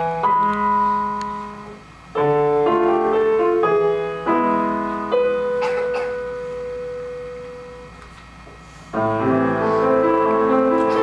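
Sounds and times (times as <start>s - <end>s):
grand piano note and chord: 8.9s - 11.0s.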